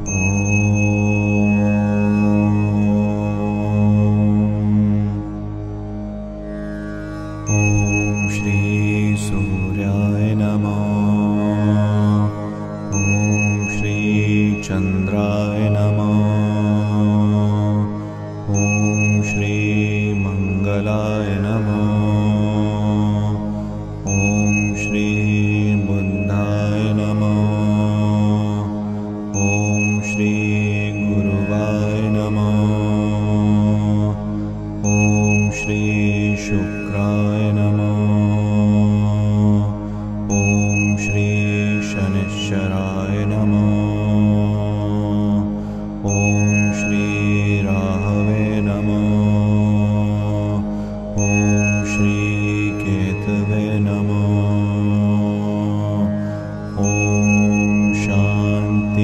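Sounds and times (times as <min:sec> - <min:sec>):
high bell-like chime: 0:00.0 - 0:03.7, 0:07.5 - 0:10.2, 0:12.9 - 0:16.8, 0:18.5 - 0:20.9, 0:24.0 - 0:27.2, 0:29.3 - 0:32.6, 0:34.8 - 0:38.1, 0:40.3 - 0:44.2, 0:46.1 - 0:49.5, 0:51.2 - 0:54.4, 0:56.8 - 0:59.0
mantra chanted to slow melody: 0:00.0 - 0:05.4, 0:07.5 - 0:59.0
sustained drone: 0:00.0 - 0:59.0.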